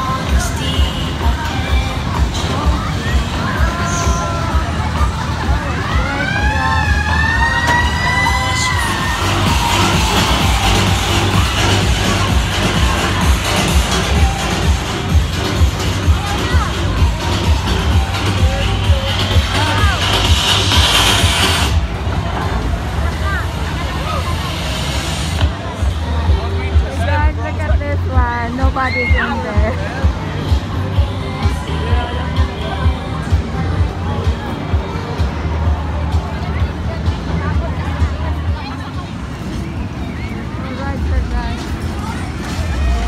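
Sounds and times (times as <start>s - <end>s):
fairground ride music with thumping beat: 0.0s - 43.0s
low crowd rumble: 0.0s - 43.0s
scattered voices: 0.0s - 43.0s
loud hiss: 19.3s - 21.8s.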